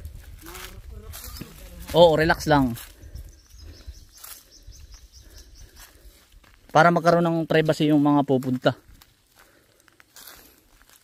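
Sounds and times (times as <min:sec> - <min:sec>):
soft steps or rustles: 0:00.0 - 0:11.0
faint bird chirping: 0:01.2 - 0:06.4.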